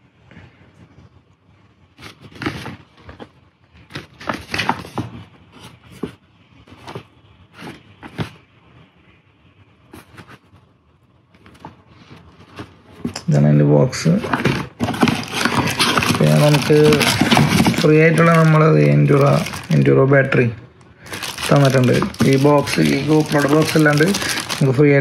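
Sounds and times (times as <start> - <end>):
cardboard box rubbing and scraping: 14.3 - 18.6.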